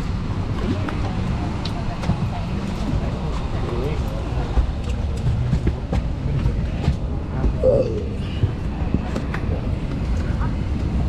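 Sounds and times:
low cabin rumble: 0:00.0 - 0:11.0
murmur of passengers talking: 0:00.0 - 0:11.0.

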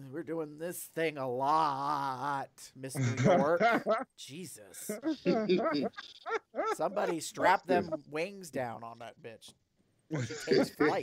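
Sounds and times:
man speaking: 0:00.0 - 0:06.0, 0:06.6 - 0:09.5, 0:10.1 - 0:11.0
man laughing: 0:03.0 - 0:08.0, 0:10.1 - 0:11.0.

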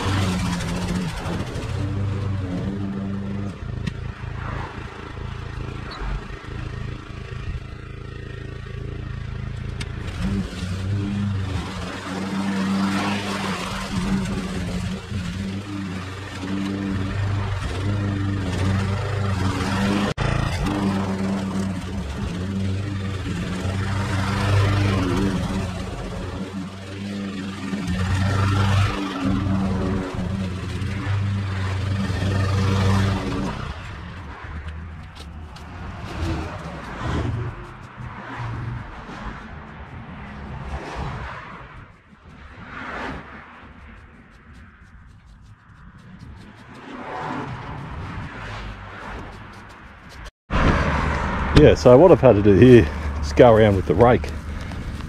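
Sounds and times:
push mower cutting grass: 0:00.0 - 0:50.3, 0:51.2 - 0:55.0.

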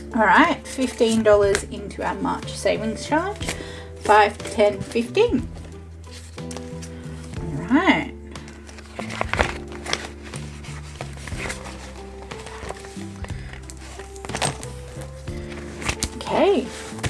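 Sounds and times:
soft background music: 0:00.0 - 0:17.0
plastic binder pockets rustling: 0:00.5 - 0:02.0, 0:03.0 - 0:07.6, 0:08.2 - 0:17.0.

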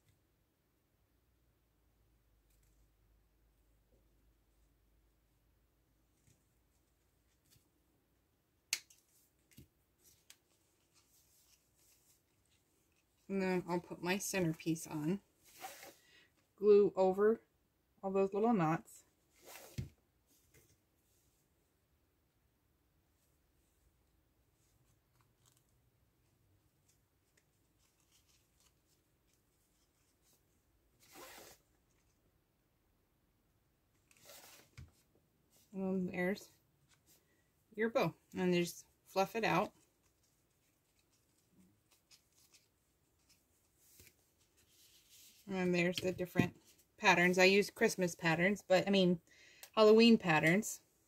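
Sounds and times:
ribbon rustling: 0:08.7 - 0:14.6, 0:24.6 - 0:32.2, 0:34.0 - 0:35.8, 0:39.1 - 0:47.0.

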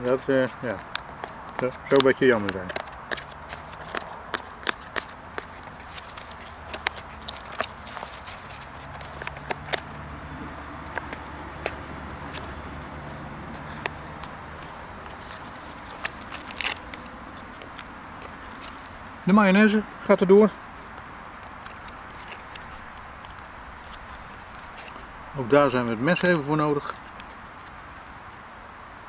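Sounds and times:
food pouches crinkling: 0:00.6 - 0:10.0, 0:10.9 - 0:19.0, 0:21.5 - 0:25.1.

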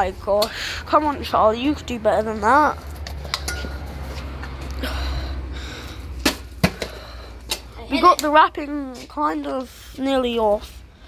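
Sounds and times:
handling rustling and rumble: 0:00.0 - 0:10.8.

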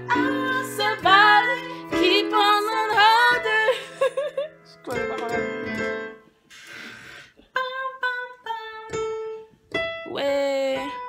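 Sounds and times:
short breathy hiss: 0:06.5 - 0:07.4.

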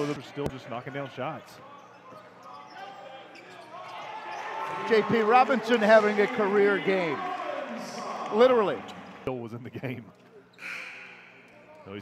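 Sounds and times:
crowd and court noise: 0:00.0 - 0:12.0.

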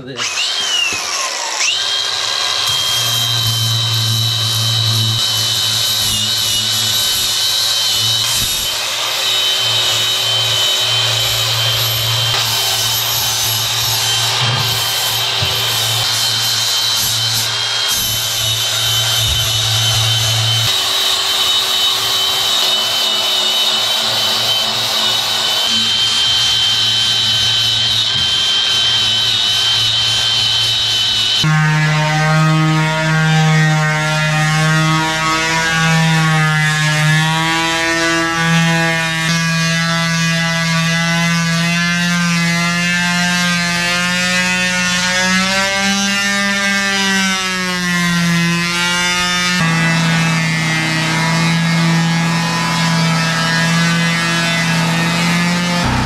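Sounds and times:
angle grinder grinding steel: 0:00.0 - 0:32.4, 0:49.6 - 0:56.0.

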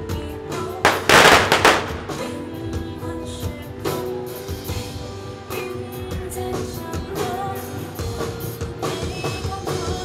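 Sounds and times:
band music with drums: 0:00.8 - 0:02.9
firecrackers popping: 0:00.9 - 0:02.5.

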